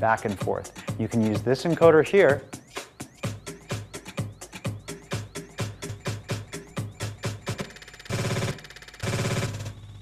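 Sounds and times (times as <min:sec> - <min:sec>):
steady kick-drum beat: 0:00.0 - 0:08.6
electronic dance music: 0:00.0 - 0:09.7
short looped bursts repeating rapidly: 0:00.0 - 0:09.7.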